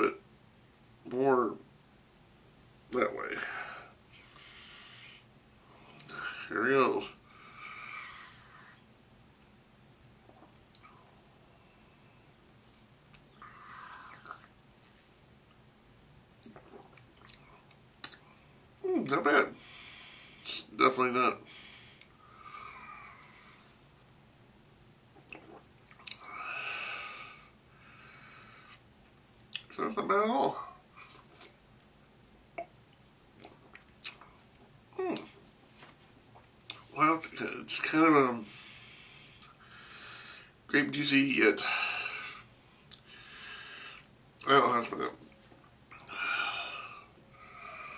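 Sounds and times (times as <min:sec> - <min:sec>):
man sipping and swallowing: 0:10.2 - 0:11.0, 0:16.4 - 0:18.2, 0:25.1 - 0:26.3, 0:32.6 - 0:35.5
lip smacks: 0:16.4 - 0:18.2, 0:25.2 - 0:26.2, 0:32.6 - 0:35.4, 0:36.4 - 0:36.9
person swallowing: 0:16.4 - 0:18.2, 0:25.2 - 0:26.2.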